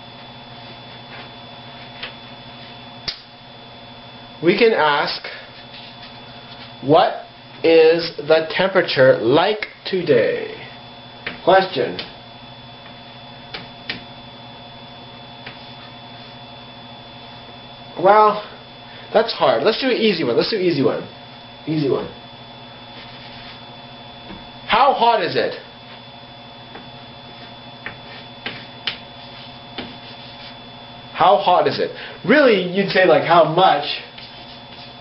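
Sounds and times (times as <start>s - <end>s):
steady electrical hum: 0.0s - 35.0s
chalk striking chalkboard: 27.8s - 30.6s, 34.2s - 35.0s.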